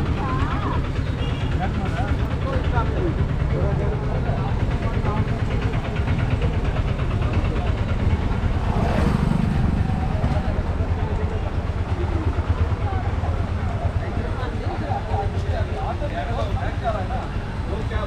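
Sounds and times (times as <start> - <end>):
passers-by chattering: 0.0 - 18.0
vehicle engines running: 0.0 - 18.0
motorcycle passing: 7.2 - 13.8.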